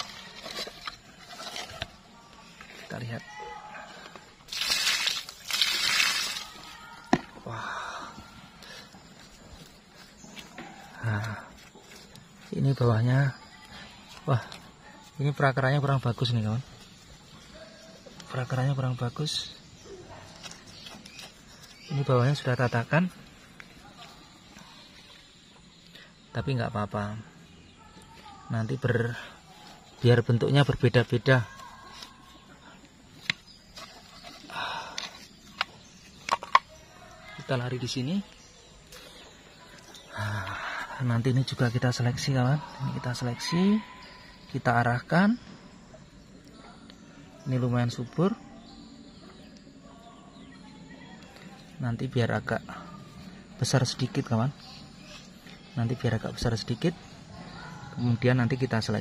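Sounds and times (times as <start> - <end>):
man talking: 40.2 - 43.8.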